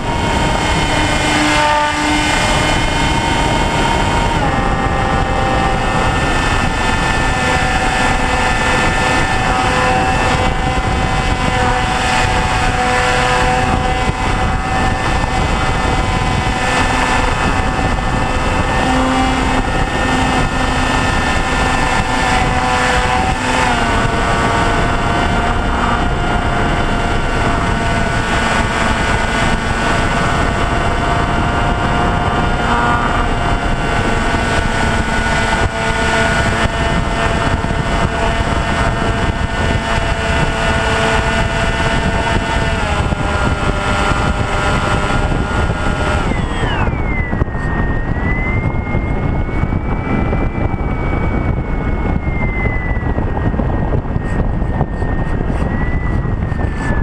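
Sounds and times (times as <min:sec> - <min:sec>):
aircraft motor whine: 0:00.0 - 0:57.0.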